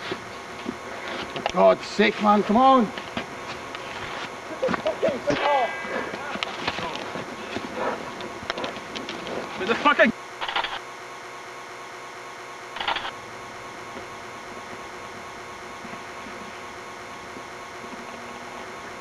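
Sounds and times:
low recording hum: 0.0s - 19.0s
static bursts: 0.5s - 19.0s
person shouting: 5.3s - 7.0s.

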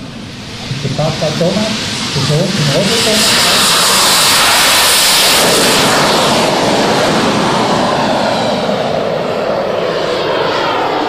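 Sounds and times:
model jet engine rushing: 0.0s - 11.0s.

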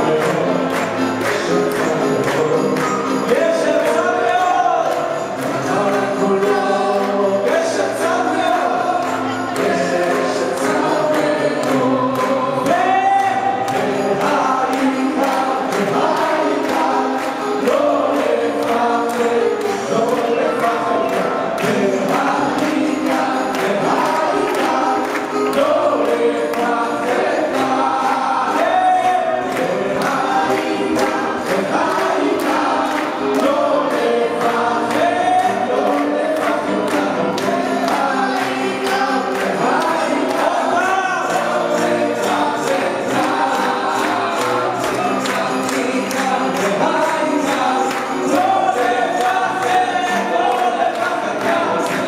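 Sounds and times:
men singing together: 0.0s - 52.0s.

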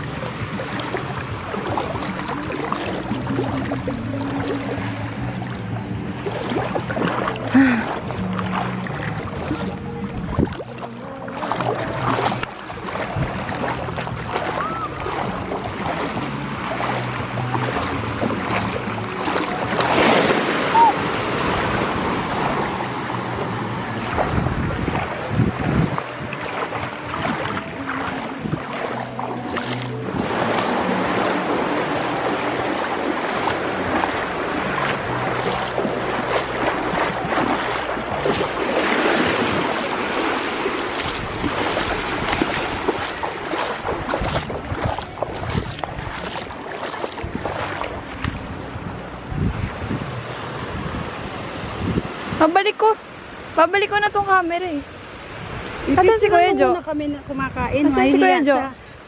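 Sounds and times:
shallow surf washing: 0.0s - 59.0s
wind buffeting microphone: 9.0s - 52.8s, 53.8s - 59.0s.

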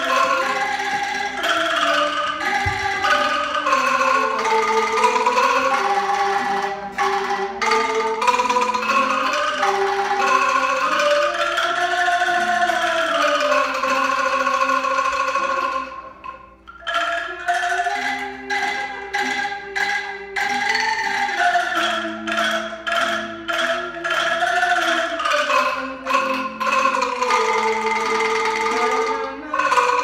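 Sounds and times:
bamboo angklung ensemble playing: 0.0s - 30.0s.

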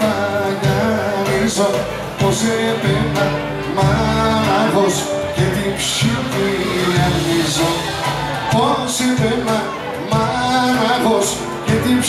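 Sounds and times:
folk band playing: 0.0s - 12.0s
person singing: 0.0s - 12.0s.

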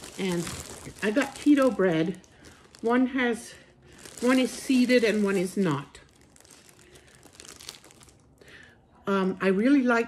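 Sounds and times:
plastic bread bags crinkling: 0.0s - 8.7s.

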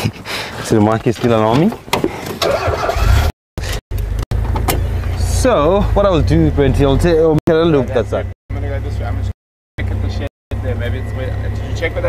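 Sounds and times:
vehicle engine starting and rumbling: 2.2s - 12.0s.

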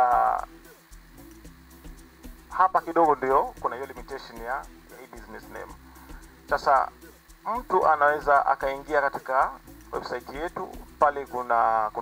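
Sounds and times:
faint background music: 0.0s - 12.0s
man's voice through microphone: 2.6s - 5.7s.

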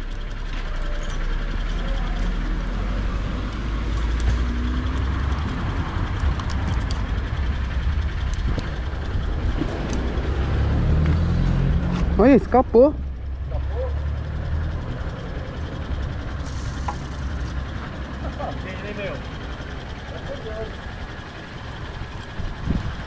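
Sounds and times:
vehicle engine rumble: 0.0s - 23.0s.

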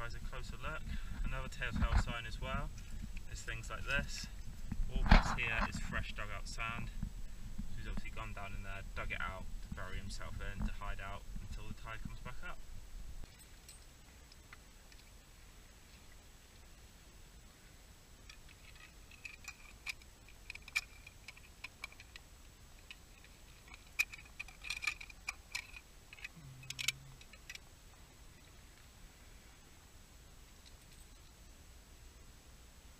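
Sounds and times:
light crackle: 0.0s - 32.1s.

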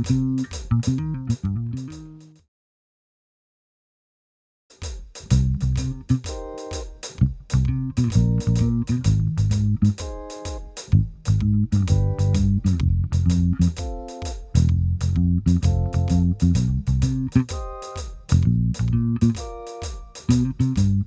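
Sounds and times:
electric bass guitar fingerstyle: 0.0s - 2.4s, 5.3s - 6.2s, 7.2s - 10.0s, 10.9s - 13.8s, 14.5s - 17.5s, 18.3s - 19.4s, 20.3s - 21.0s.

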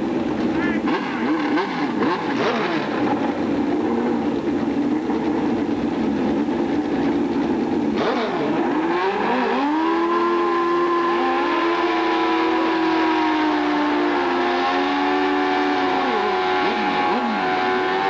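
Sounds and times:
second motorcycle engine revving: 0.0s - 4.7s, 7.9s - 18.0s
motorcycle engine revving hard: 0.5s - 4.6s, 7.9s - 18.0s.

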